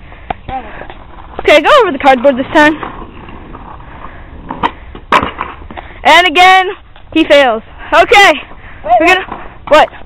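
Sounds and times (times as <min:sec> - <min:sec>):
skateboard wheels rolling on asphalt: 0:00.0 - 0:10.0
skateboard clack: 0:00.3 - 0:05.8.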